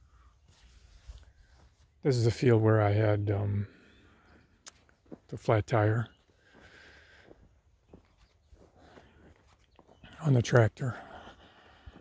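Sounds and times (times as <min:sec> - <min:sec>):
faint outdoor rumble: 0:00.0 - 0:12.0.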